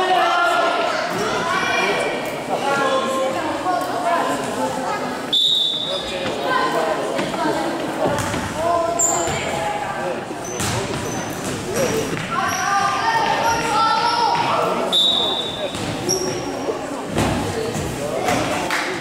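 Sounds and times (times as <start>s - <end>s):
players and spectators calling out: 0.0s - 16.9s
short high shoe squeaks: 9.0s - 9.3s.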